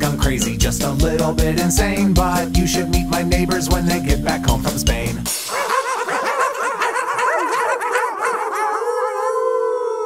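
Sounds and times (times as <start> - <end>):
chorus of animal cries: 5.5 - 10.0.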